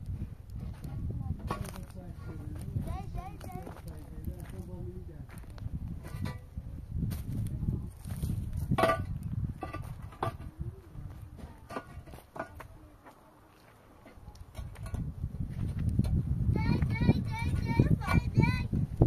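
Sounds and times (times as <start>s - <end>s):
concrete blocks knocking and scraping: 0.6s - 4.6s, 5.3s - 18.6s.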